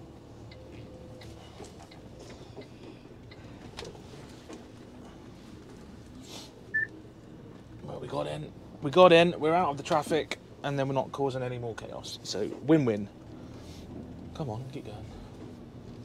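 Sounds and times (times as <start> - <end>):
diesel lorry engine hum: 0.0 - 16.0
short beep: 6.7 - 6.9.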